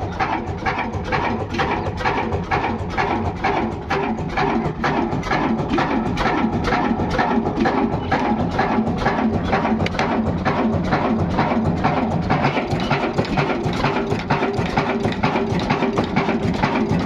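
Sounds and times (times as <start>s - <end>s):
diesel engine rhythmic knocking: 0.0s - 17.0s.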